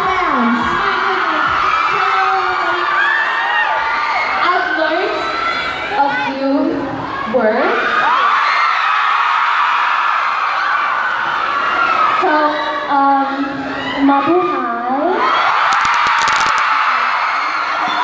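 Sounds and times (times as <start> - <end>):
crowd screaming and cheering: 0.0 - 18.0.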